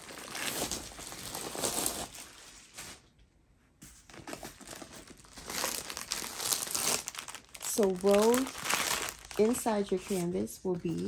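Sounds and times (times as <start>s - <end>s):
plastic packaging crinkling: 0.0s - 3.0s, 4.1s - 11.0s.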